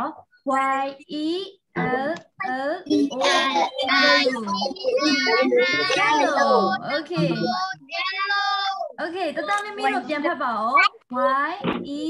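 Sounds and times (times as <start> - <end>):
child speaking: 0.6 - 10.2, 10.8 - 11.0.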